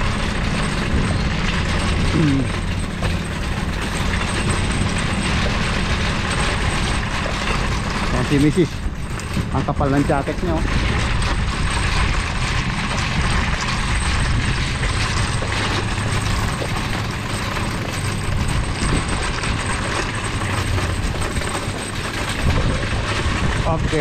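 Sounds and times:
shopping cart rattling on pavement: 0:00.0 - 0:24.0.

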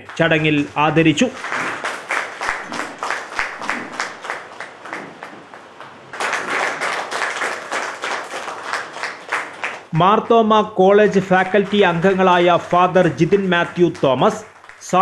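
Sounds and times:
group applauding: 0:00.0 - 0:10.3, 0:10.9 - 0:15.0.

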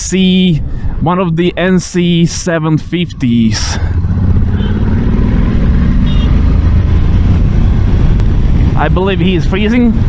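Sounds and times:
road rush: 0:00.0 - 0:10.0
motorcycle engine accelerating: 0:03.8 - 0:10.0.

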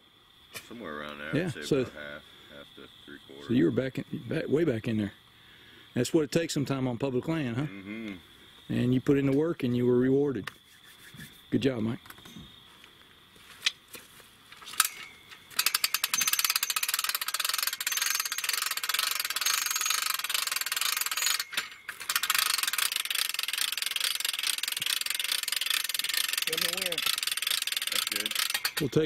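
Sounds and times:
ratcheting hand hoist clicking: 0:14.6 - 0:29.0.

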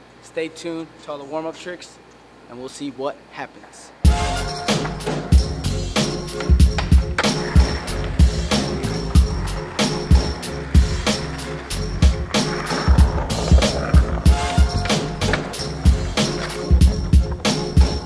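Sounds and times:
background music with steady beat: 0:04.0 - 0:18.0
skateboard wheels rolling on concrete: 0:04.1 - 0:18.0
skateboard popping and landing: 0:06.4 - 0:16.6.

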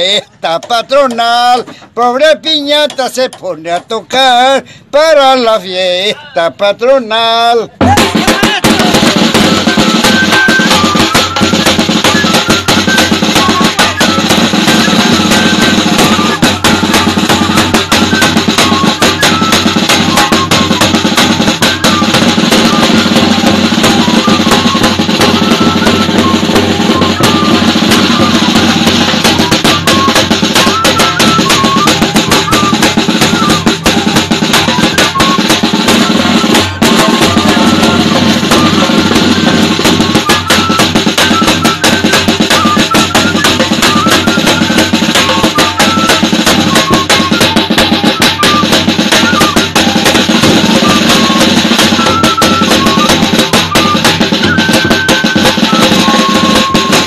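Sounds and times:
flute melody: 0:07.6 - 0:57.0
bass drum: 0:07.8 - 0:57.0
snare drum: 0:07.8 - 0:57.0.

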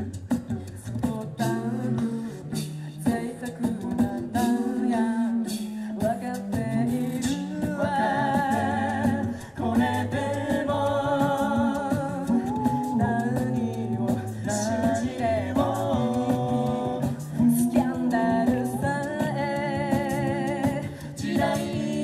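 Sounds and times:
low sung bass line: 0:00.0 - 0:22.0
woman singing lead: 0:00.0 - 0:22.0
backing voices holding chords: 0:07.6 - 0:22.0.

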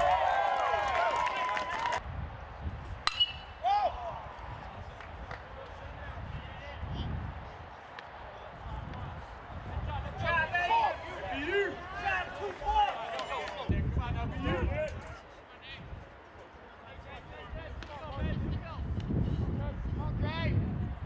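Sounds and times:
voices calling and shouting: 0:03.5 - 0:15.9.

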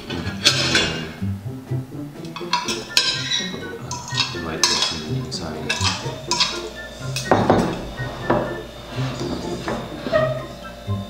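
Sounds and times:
cutlery clinking on ceramic plates: 0:00.0 - 0:01.2, 0:02.3 - 0:10.6.

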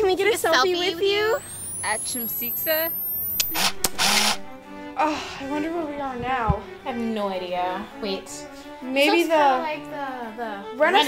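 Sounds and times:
steady tone: 0:01.2 - 0:05.9
camera shutter clicks: 0:02.4 - 0:04.4.

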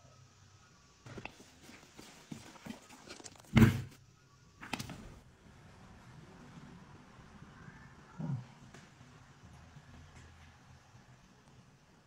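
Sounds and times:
loud thump: 0:03.5 - 0:04.0.

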